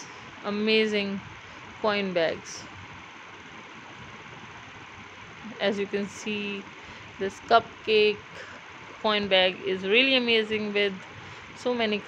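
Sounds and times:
background recording hiss: 0.0 - 12.0.

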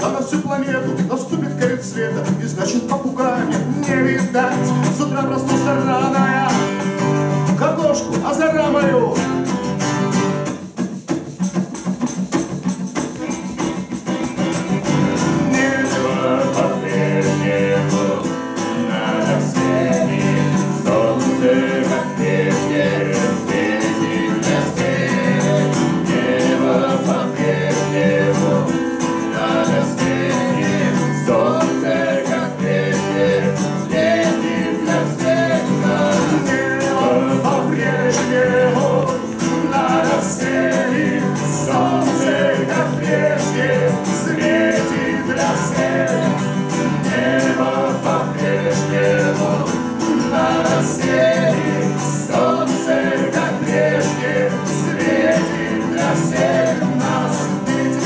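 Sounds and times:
man singing: 0.0 - 9.5, 14.0 - 58.0
strummed acoustic guitar: 0.0 - 58.0.

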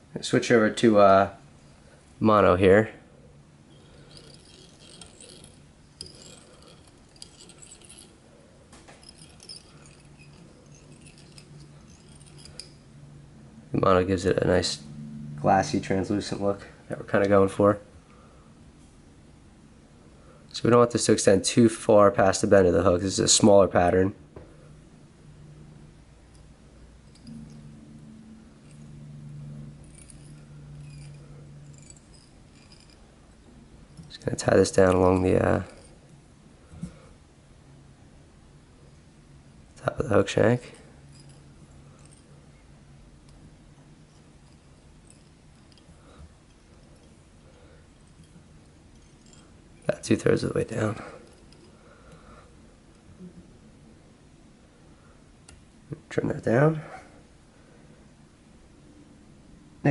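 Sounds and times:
faint low hum: 0.0 - 59.9
clicks and scratching of handling: 3.7 - 12.8.

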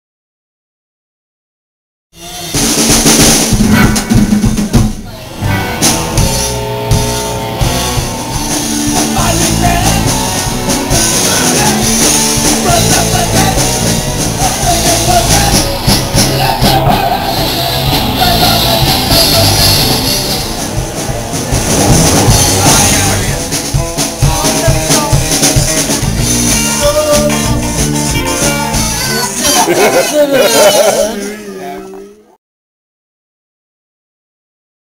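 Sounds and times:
band playing live music: 2.2 - 32.0
bass drum and snare: 2.3 - 29.2.

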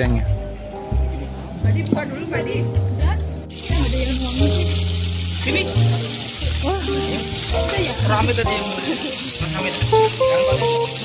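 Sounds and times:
background music with bass line: 0.0 - 11.0
beef sizzling on grill plate: 3.5 - 11.0.

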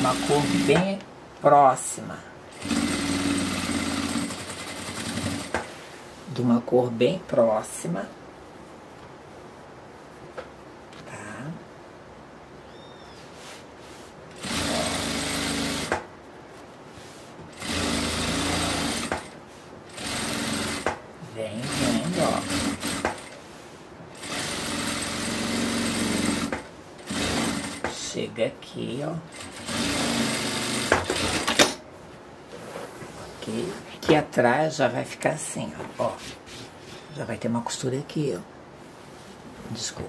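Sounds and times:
sewing machine stitching: 0.0 - 0.9, 2.5 - 5.6, 14.3 - 16.0, 17.5 - 21.0, 21.6 - 23.4, 24.2 - 28.0, 29.3 - 31.8.

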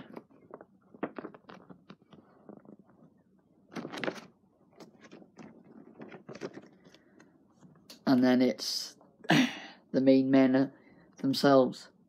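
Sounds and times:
paper tickets rustling: 3.7 - 7.2.

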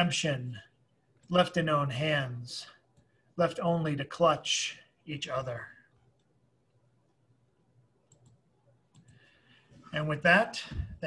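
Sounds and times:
small clicks: 8.0 - 9.3.

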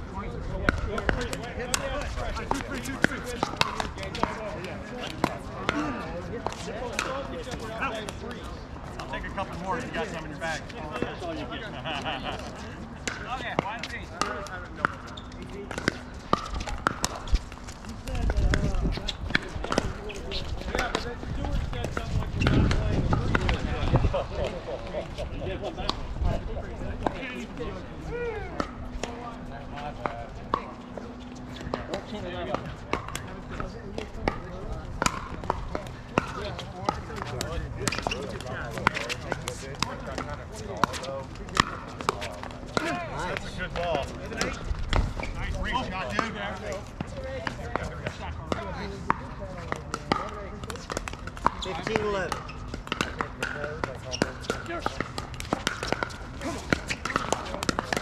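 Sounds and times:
players' voices: 0.0 - 58.0
paddles hitting plastic ball: 0.7 - 4.4, 49.0 - 58.0.

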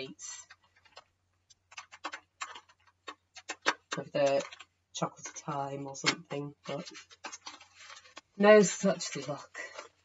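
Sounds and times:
pens clicking and tapping: 0.2 - 10.0.

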